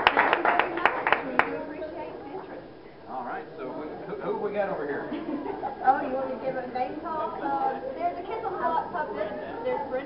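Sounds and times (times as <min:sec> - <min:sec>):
group clapping: 0:00.0 - 0:01.6.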